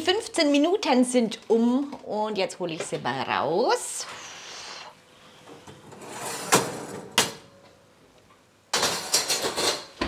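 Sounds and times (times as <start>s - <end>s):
metal tray scraping on oven rails: 5.4s - 7.3s.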